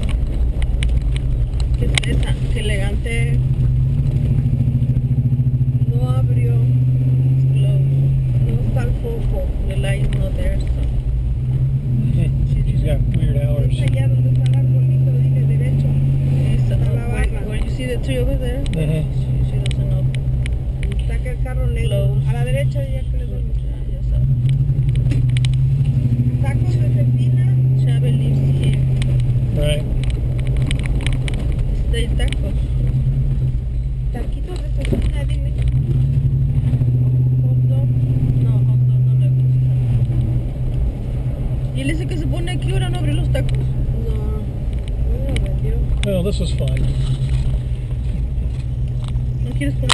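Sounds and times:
car engine drone: 0.0 - 49.9
road noise: 0.0 - 49.9.

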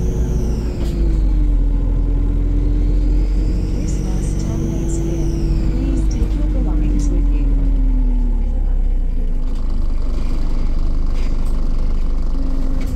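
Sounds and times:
bus engine low rumble: 0.0 - 12.9
turbo whine: 0.0 - 12.9.

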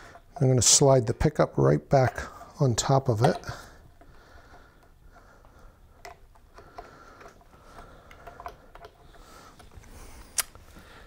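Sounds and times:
small clicks and taps: 4.8 - 10.6.

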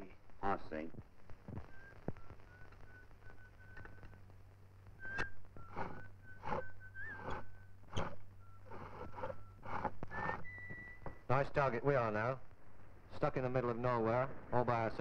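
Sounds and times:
man whistling slow tune: 1.7 - 4.2, 5.0 - 11.3.

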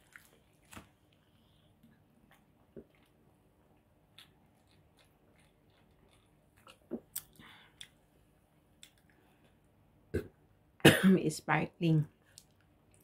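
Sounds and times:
person burping: 10.1 - 11.0.

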